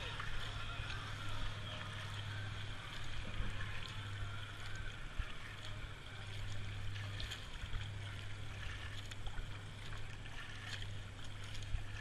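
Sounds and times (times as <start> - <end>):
low hum: 0.0 - 12.0
paddle splashing water: 0.0 - 12.0.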